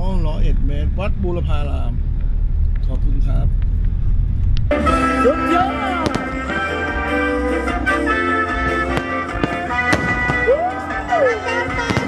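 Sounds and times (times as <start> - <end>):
music playing: 4.7 - 12.0
firework bangs: 5.5 - 11.0, 11.7 - 12.0.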